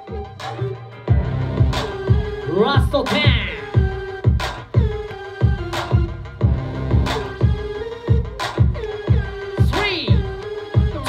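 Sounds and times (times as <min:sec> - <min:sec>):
hip-hop dance music: 0:00.0 - 0:11.0.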